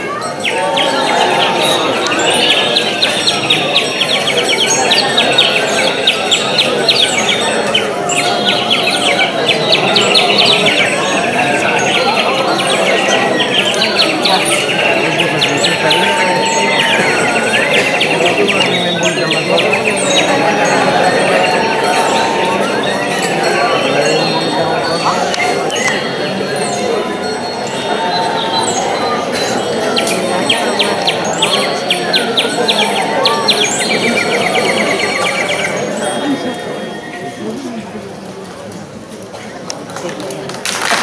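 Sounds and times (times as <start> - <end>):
wind band held notes: 0.3 - 38.1.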